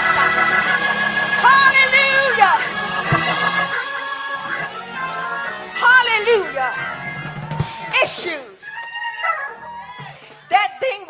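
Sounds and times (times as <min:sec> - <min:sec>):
held keyboard notes: 0:00.0 - 0:07.7.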